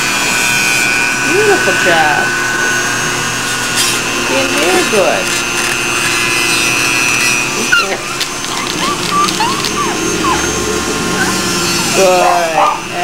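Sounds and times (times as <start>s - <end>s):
nail grinder whining: 0.0s - 13.0s
high squeaky sounds: 1.1s - 12.0s.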